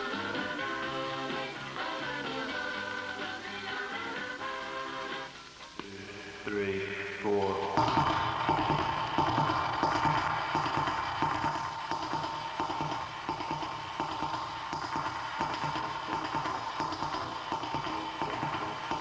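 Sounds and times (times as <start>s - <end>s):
steady high tone: 0.0s - 19.0s
fast rhythmic low strokes: 5.5s - 19.0s.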